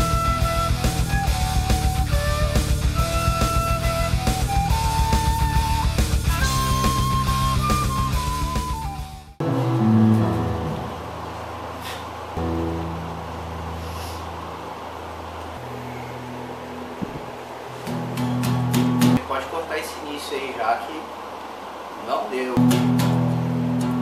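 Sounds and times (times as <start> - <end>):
heavy rock band playing: 0.0 - 10.8
solo electric bass notes: 0.0 - 11.7.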